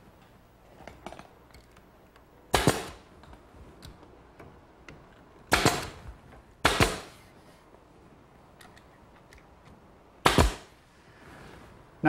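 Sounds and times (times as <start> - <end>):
pneumatic nailer firing: 2.5 - 3.0, 5.5 - 6.0, 6.6 - 7.2, 10.2 - 10.8.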